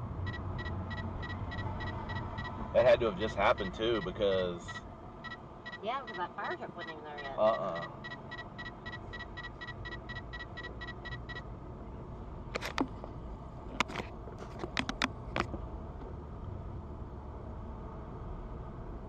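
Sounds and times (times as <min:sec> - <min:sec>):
road and engine noise: 0:00.0 - 0:19.0
rapid electronic beeping: 0:00.2 - 0:11.4
sharp clicks and knocks: 0:12.5 - 0:13.1, 0:13.7 - 0:15.6.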